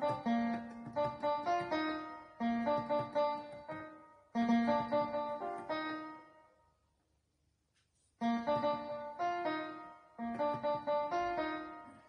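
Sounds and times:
keyboard piano melody: 0.0 - 6.7, 8.2 - 12.0.

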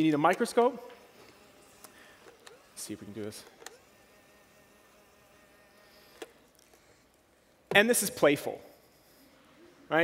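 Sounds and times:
small motor buzzing whine: 0.0 - 9.9.

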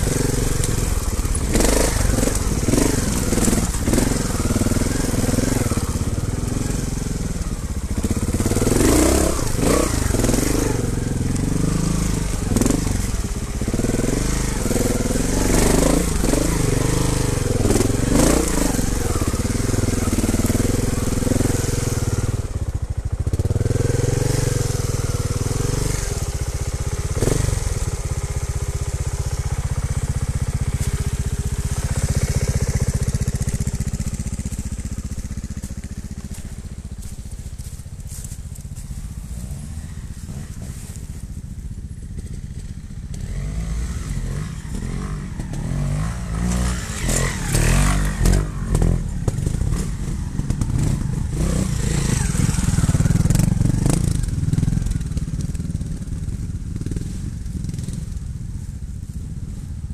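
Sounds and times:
motorcycle engine revving: 0.0 - 59.9.

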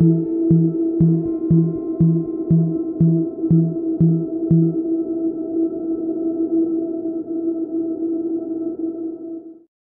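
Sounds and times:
low synth pad note: 0.0 - 7.2.

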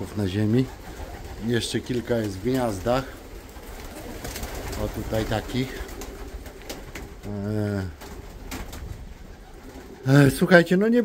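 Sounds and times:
pigeons cooing: 0.0 - 10.7.

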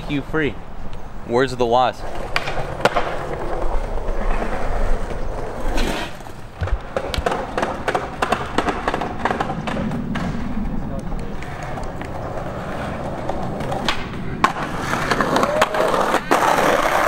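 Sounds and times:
skateboards rolling on concrete: 0.0 - 17.0
skateboard decks clacking: 2.0 - 17.0.

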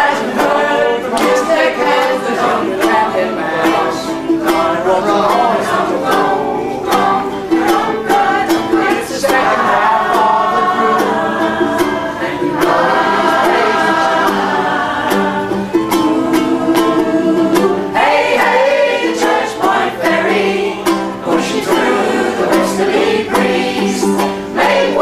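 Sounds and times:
strummed ukulele: 0.0 - 25.0
vocal group singing in harmony: 0.0 - 25.0.

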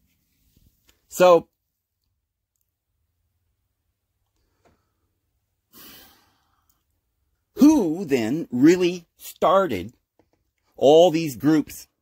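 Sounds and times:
man breathing: 4.3 - 6.9.

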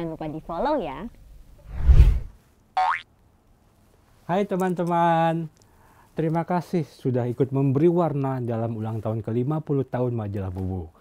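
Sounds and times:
whoosh into low boom: 1.6 - 2.4
rising cartoon boing: 2.8 - 3.0.

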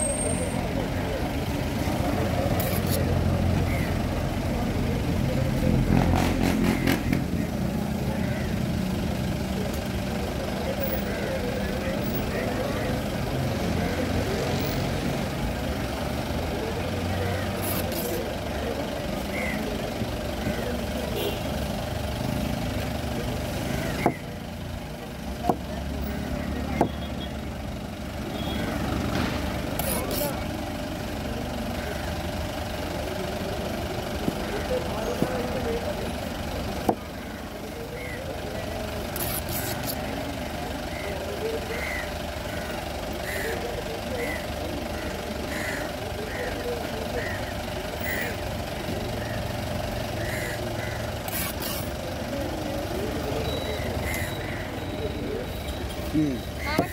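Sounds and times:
engine idling: 0.0 - 56.9.

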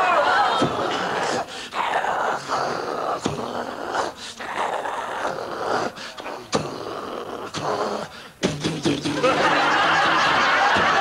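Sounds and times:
person's wordless vocal sounds: 0.6 - 9.4.

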